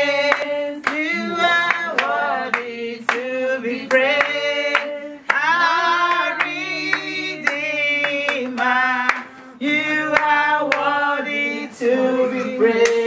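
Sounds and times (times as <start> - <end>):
group of people singing: 0.0 - 13.0
hand-clapping: 0.2 - 9.4, 10.1 - 11.0, 12.8 - 13.0.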